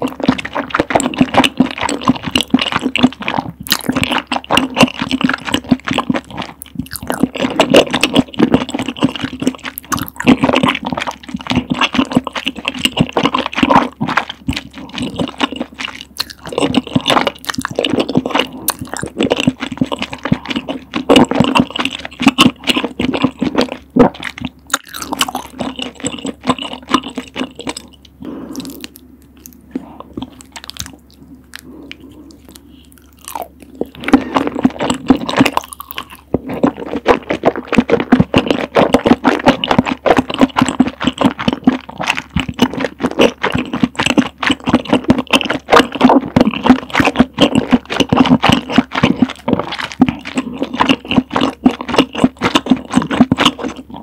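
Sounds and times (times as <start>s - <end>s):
sticky squelches and lip sounds: 0.0s - 54.0s
wet chewing: 0.0s - 54.0s.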